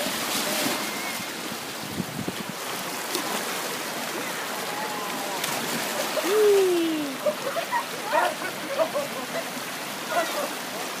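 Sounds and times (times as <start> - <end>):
sea water washing on rocks: 0.0 - 9.0.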